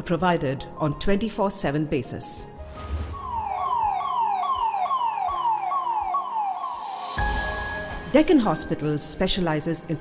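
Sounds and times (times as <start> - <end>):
ambulance siren: 2.8 - 7.5.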